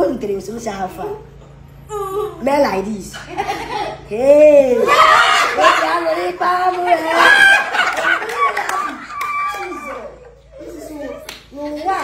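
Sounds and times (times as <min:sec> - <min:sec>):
voices laughing and calling out: 0:03.1 - 0:12.0
hand claps: 0:11.2 - 0:11.8.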